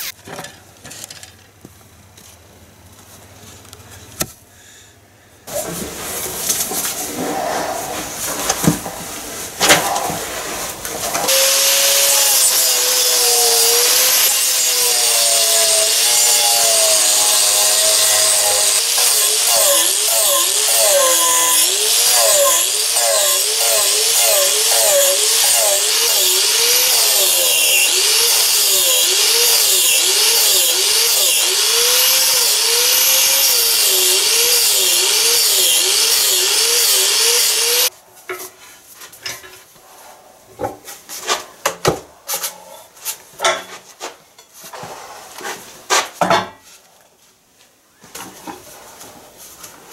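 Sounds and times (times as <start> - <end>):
angle grinder cutting wood: 9.8 - 37.9.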